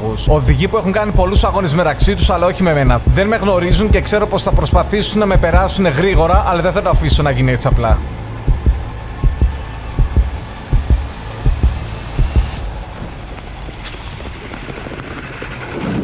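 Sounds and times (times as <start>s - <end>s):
low rumble: 0.0s - 16.0s
heartbeat thumps: 0.3s - 12.9s
hiss: 8.8s - 13.2s.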